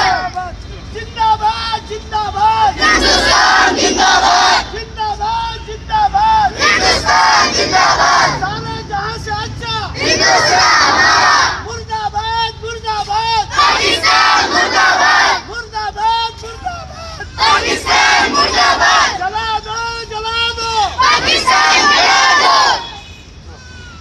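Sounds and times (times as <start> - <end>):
children chanting: 2.8 - 4.7, 6.6 - 8.4, 10.0 - 11.6, 13.5 - 15.4, 17.4 - 19.2, 21.0 - 22.8
child calling out: 23.5 - 24.0.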